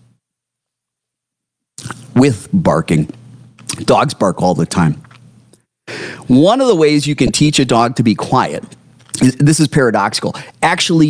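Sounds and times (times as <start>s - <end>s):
speech: 2.2s - 5.0s, 6.3s - 11.0s.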